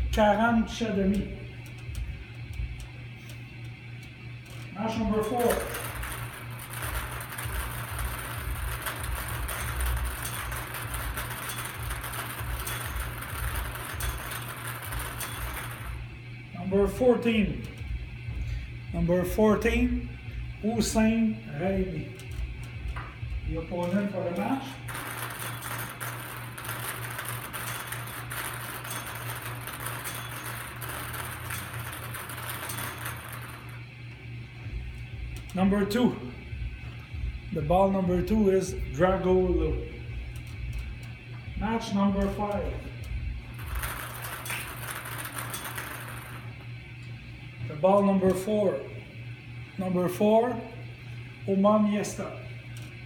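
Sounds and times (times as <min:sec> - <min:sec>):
balls rattling in bingo cage: 0:05.2 - 0:16.0, 0:23.8 - 0:33.8, 0:43.5 - 0:46.6.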